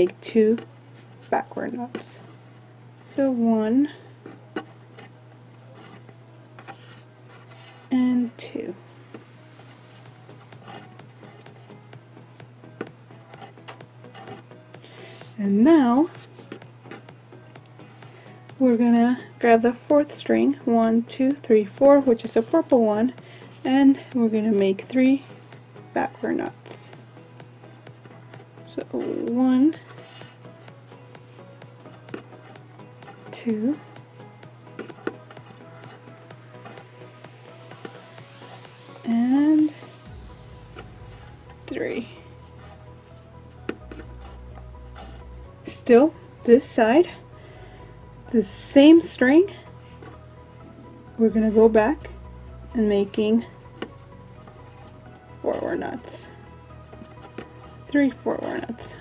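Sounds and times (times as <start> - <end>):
faint background music: 0.0 - 59.0
steady low hum: 0.0 - 59.0
thread rubbing and ticking: 9.1 - 11.9, 12.7 - 14.7, 25.9 - 45.9, 52.7 - 59.0.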